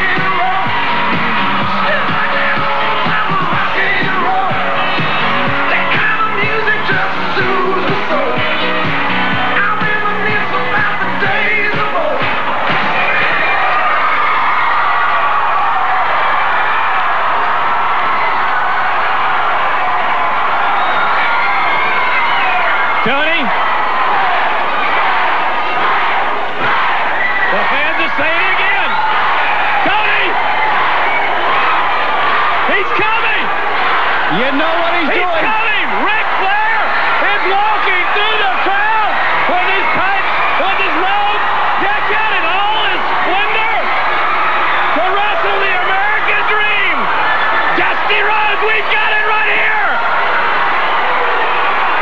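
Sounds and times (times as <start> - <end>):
crowd cheering and yelling: 0.0 - 52.0.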